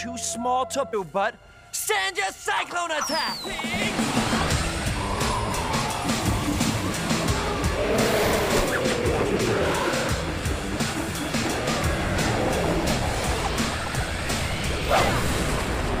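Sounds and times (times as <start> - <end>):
action music with steady beat: 0.0 - 15.0
wind-like whooshes: 3.9 - 16.0
long falling tone: 4.7 - 10.2.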